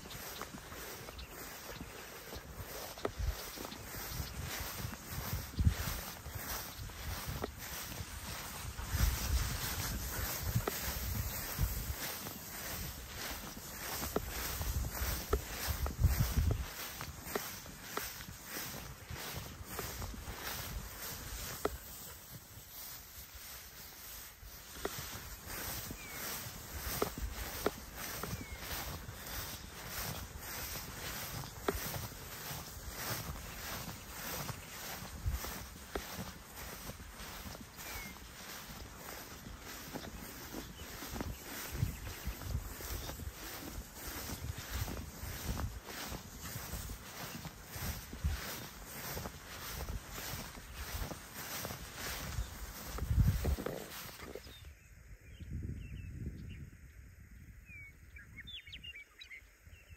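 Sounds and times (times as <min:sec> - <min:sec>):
footsteps through tall grass: 0:00.0 - 0:54.8.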